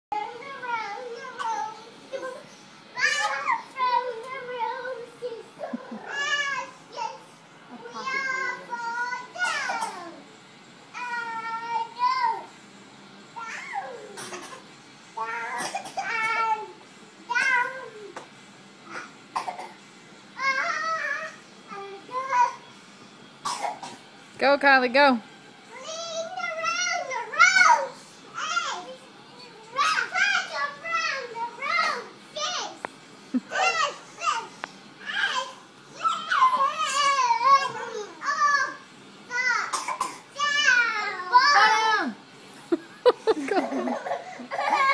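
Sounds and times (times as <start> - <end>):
toddler high rising vocal: 35.0 - 39.6.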